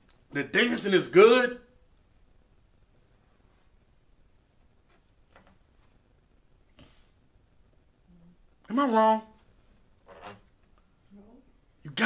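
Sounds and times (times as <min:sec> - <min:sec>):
faint low hum: 0:00.0 - 0:12.0
man lecturing: 0:00.3 - 0:01.7, 0:08.7 - 0:09.4.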